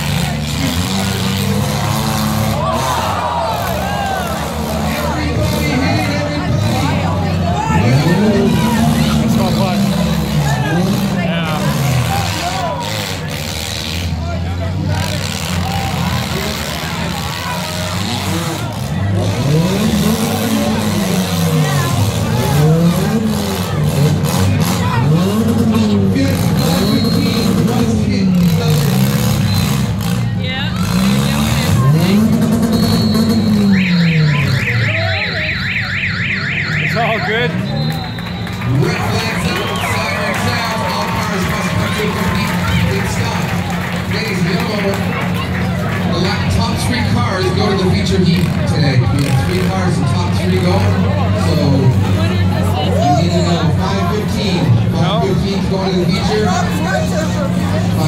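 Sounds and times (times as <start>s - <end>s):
car engines revving: 0.0s - 58.0s
rapid warbling siren: 32.4s - 38.6s.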